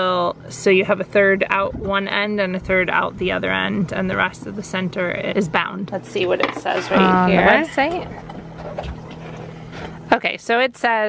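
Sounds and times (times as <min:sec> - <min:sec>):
faint low hum: 0:00.0 - 0:10.5
wind on microphone: 0:01.4 - 0:05.6.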